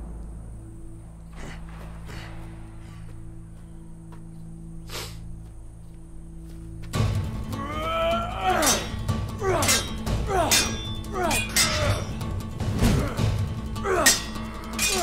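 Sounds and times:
low drone: 0:00.0 - 0:15.0
loud action music: 0:07.0 - 0:15.0
metallic sword clashes: 0:08.5 - 0:12.2, 0:13.9 - 0:15.0.

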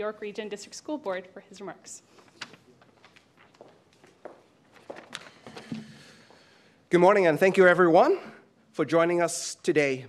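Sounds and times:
soft footsteps: 0:02.2 - 0:06.5.

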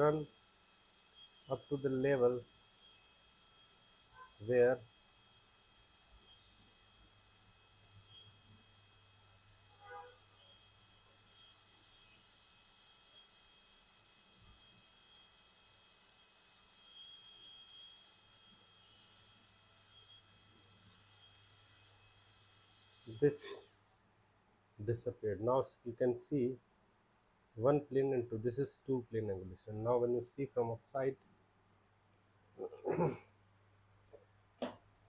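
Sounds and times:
dental drill whining: 0:00.0 - 0:23.8.

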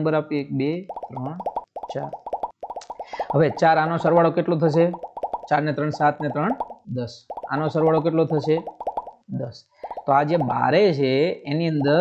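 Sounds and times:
man speaking: 0:00.0 - 0:02.2, 0:03.0 - 0:08.7, 0:09.3 - 0:12.0.

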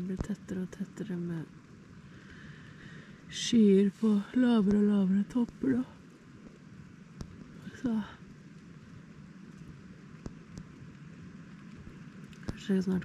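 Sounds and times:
faint steady hiss: 0:00.0 - 0:13.0
raindrops ticking on a tent: 0:00.0 - 0:13.0.

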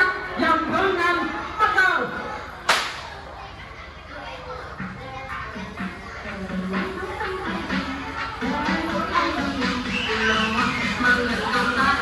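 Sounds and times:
children's voices: 0:02.1 - 0:12.0
loud sharp crack: 0:02.7 - 0:03.2.

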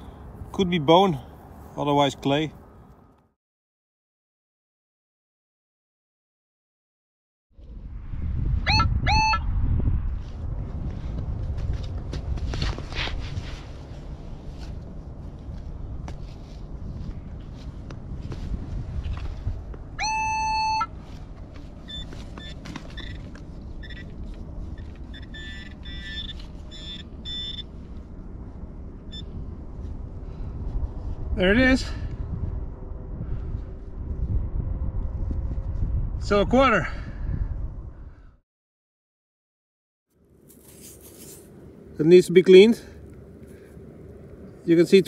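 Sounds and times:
wind on microphone: 0:07.6 - 0:22.0, 0:28.4 - 0:38.4
metal detector beeps: 0:20.0 - 0:20.9, 0:21.8 - 0:24.2, 0:24.8 - 0:27.7, 0:29.1 - 0:29.4.

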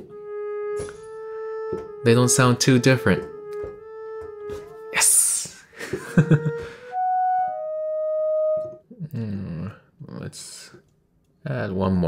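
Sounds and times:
clarinet long tone: 0:06.1 - 0:08.8.

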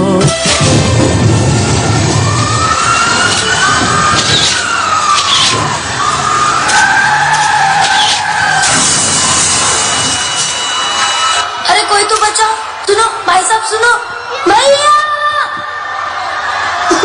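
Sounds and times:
tyres screeching: 0:01.5 - 0:11.7.

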